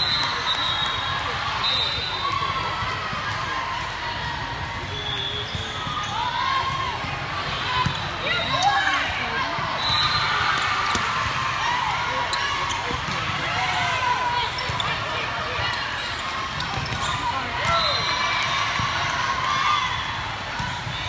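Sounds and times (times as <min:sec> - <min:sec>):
voices calling out and chattering: 0:00.0 - 0:21.0
sneakers squeaking on gym floor: 0:14.4 - 0:15.0, 0:15.6 - 0:18.1.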